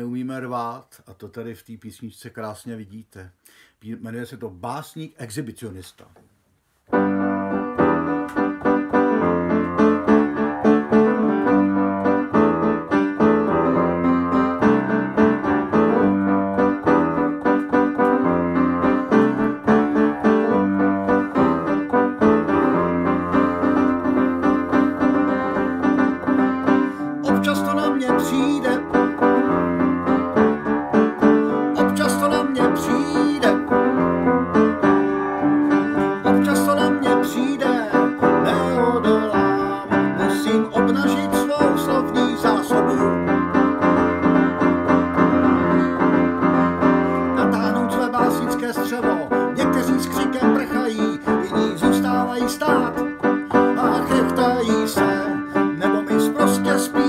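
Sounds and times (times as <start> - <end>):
piano chords: 6.9 - 57.0
man singing: 27.0 - 29.8, 31.5 - 34.2, 36.1 - 43.4, 47.2 - 57.0.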